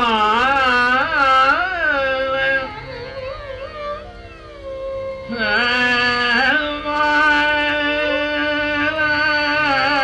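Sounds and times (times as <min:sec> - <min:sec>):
tanpura drone: 0:00.0 - 0:10.0
person singing gliding vocal: 0:05.3 - 0:10.0.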